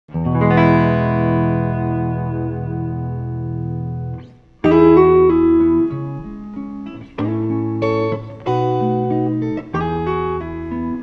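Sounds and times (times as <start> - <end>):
clean electric guitar chords: 0.1 - 11.0.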